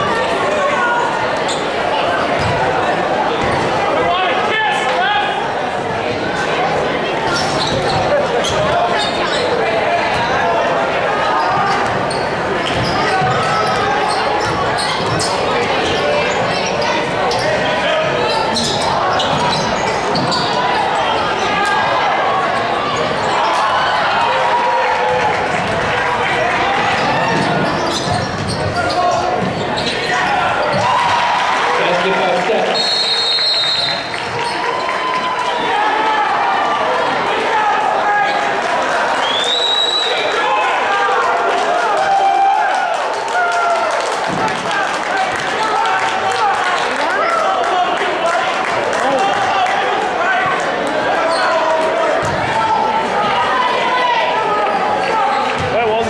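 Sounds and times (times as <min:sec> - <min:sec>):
crowd chatter: 0:00.0 - 0:56.0
referee's whistle: 0:32.8 - 0:34.0, 0:39.2 - 0:40.4.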